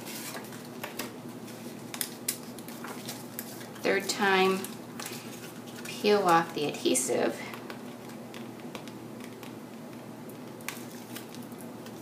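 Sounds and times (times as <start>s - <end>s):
paper rustling and tapping: 0.1s - 6.6s.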